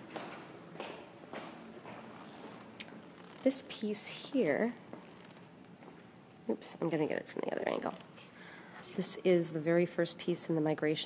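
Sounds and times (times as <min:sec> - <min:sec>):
faint footsteps on hard floor: 0:00.0 - 0:03.6, 0:04.8 - 0:06.1.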